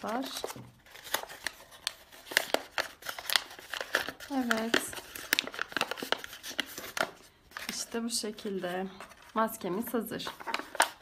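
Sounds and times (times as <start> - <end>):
paper mask crinkling: 0.0 - 11.0.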